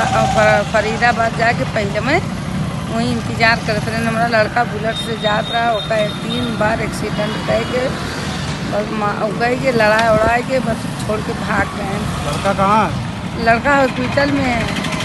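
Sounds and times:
woman talking: 0.0 - 2.3, 2.9 - 8.0, 8.7 - 12.1, 13.4 - 14.8
road traffic noise: 0.0 - 15.0.

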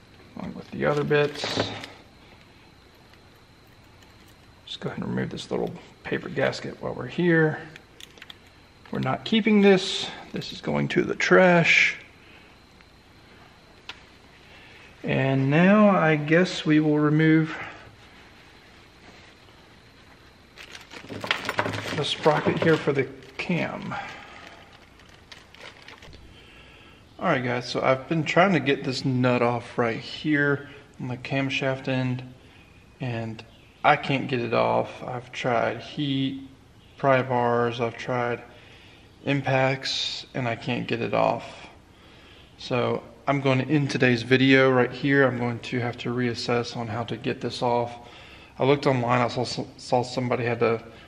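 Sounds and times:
faint steady hiss: 0.0 - 51.0.

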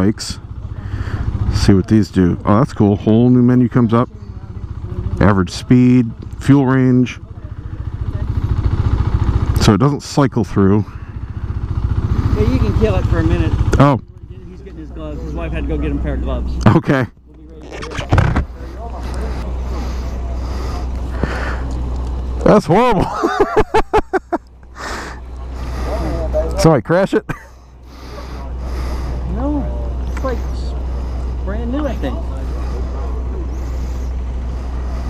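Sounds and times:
motorcycle engine idling: 0.0 - 35.0
man laughing: 22.8 - 25.2, 27.1 - 27.6.

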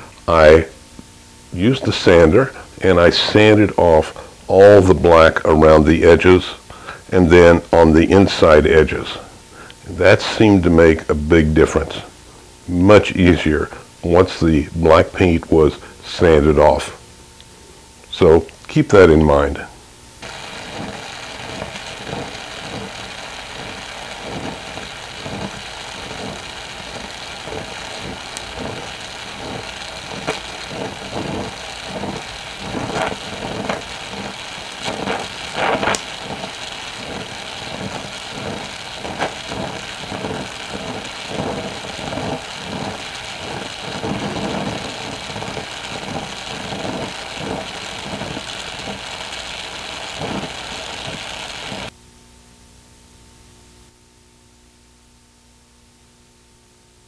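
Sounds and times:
torch flame hissing: 0.0 - 16.9, 18.1 - 52.0
small pops and crackles: 20.2 - 51.9.

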